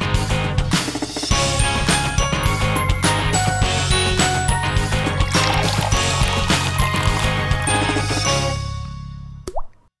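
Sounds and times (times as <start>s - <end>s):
water drop plop effect: 9.4s - 9.9s.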